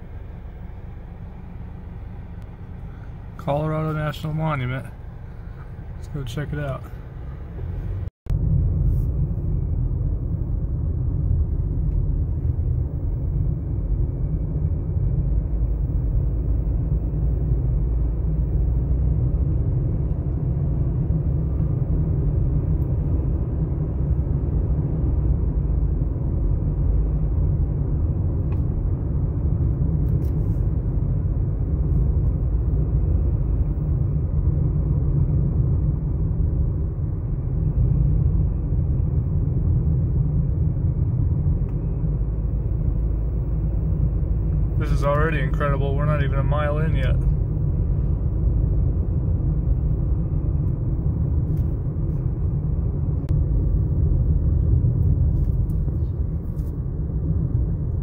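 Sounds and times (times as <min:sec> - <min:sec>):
car rumble inside cabin: 0:00.0 - 0:58.0.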